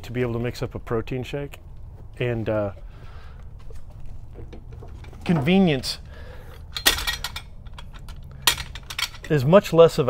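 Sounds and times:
hard objects clinking and knocking: 6.6s - 9.4s.

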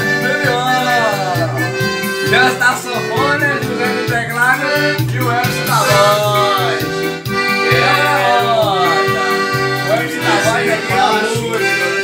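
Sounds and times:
accordion melody: 0.0s - 12.0s
keyboard backing with bass: 0.0s - 12.0s.

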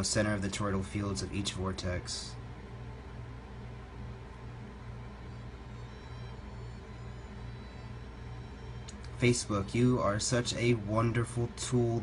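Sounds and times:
low pulsing hum: 0.0s - 12.0s
faint thin high tones: 5.0s - 10.4s.

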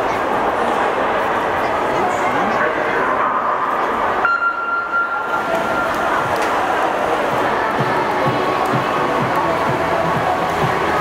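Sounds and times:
crowd noise in hall: 0.0s - 11.0s
electronic start beep: 4.2s - 5.9s.

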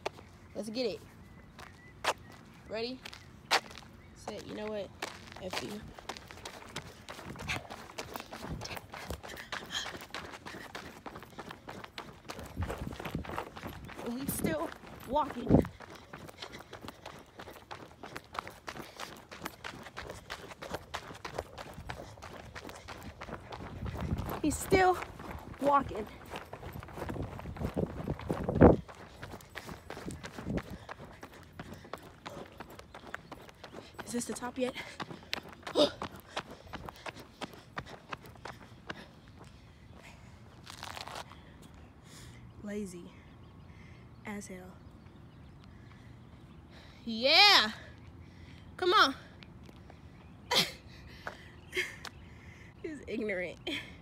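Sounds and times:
footsteps on paved path: 0.0s - 54.0s
heavy out-of-breath panting: 6.7s - 13.8s, 15.6s - 24.4s, 28.8s - 40.4s.

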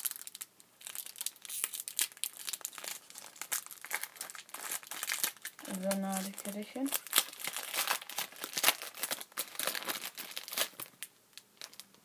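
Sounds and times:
plastic wrapper crinkling and tearing: 0.0s - 12.0s.

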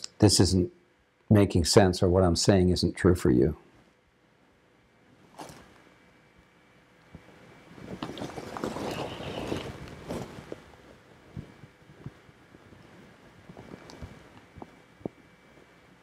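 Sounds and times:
faint rustling and crackling: 5.1s - 16.0s.

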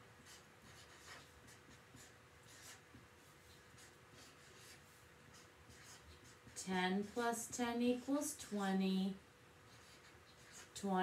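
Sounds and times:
marker pen scratching on paper: 0.2s - 8.7s, 9.6s - 11.0s.

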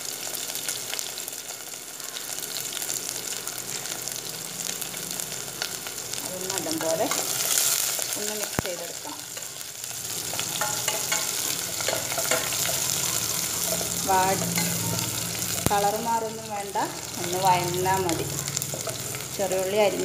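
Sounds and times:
garlic and onion sizzling: 0.0s - 20.0s
spoon tapping pot: 10.2s - 15.8s
wavering pitched sounds: 10.2s - 20.0s.

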